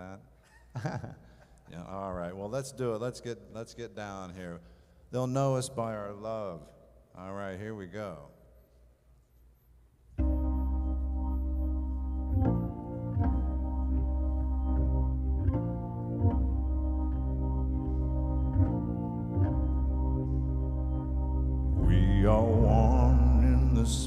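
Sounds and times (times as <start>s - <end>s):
organ playing held chords: 10.2s - 24.0s.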